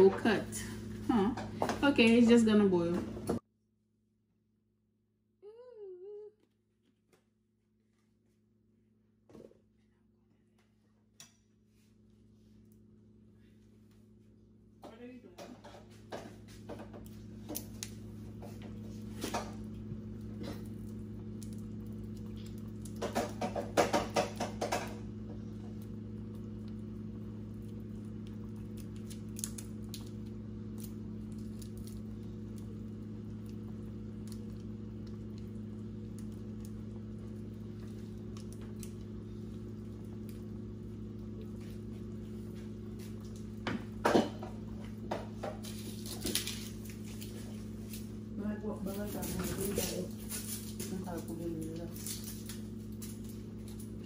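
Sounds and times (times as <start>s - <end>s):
stew boiling in a pot: 0.0s - 3.4s, 8.1s - 54.0s
low electrical hum: 0.0s - 3.5s, 5.4s - 54.0s.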